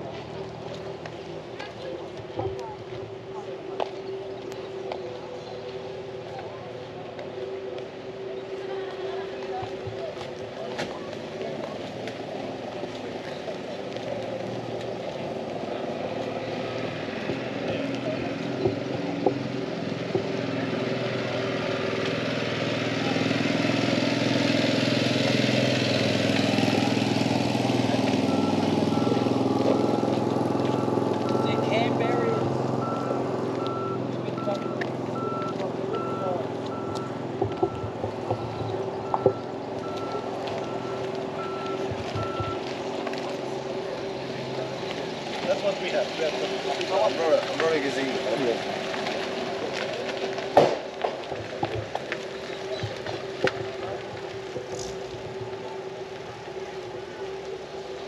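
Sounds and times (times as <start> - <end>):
vehicle engine running: 0.0 - 58.0
reversing alarm beeping: 28.1 - 42.7.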